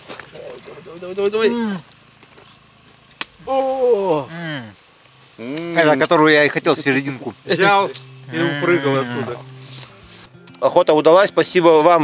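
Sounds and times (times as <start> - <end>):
faint steady hiss: 0.0 - 12.0
man's drawn-out exclamation: 3.4 - 4.8.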